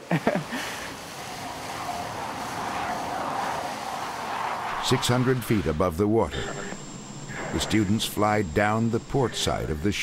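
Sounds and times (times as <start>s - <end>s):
jet engine rushing: 0.9s - 10.0s.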